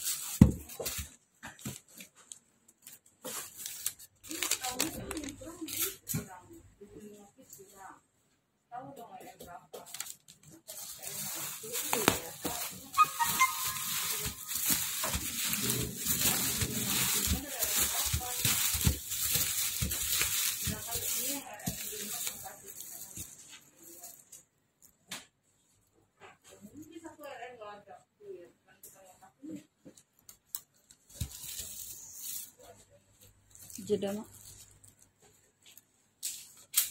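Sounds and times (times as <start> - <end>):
bubble wrap crinkling and rustling: 0.0 - 6.4, 9.8 - 24.5, 30.2 - 36.9.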